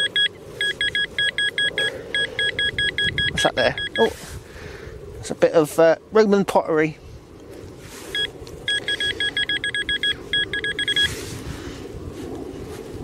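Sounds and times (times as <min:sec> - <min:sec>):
metal detector beeping rapidly: 0:00.0 - 0:04.1, 0:08.1 - 0:11.1.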